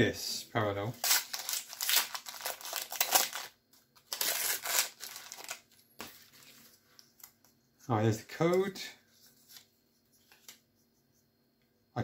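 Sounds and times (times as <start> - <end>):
foil pack tearing and crinkling: 1.0 - 5.6.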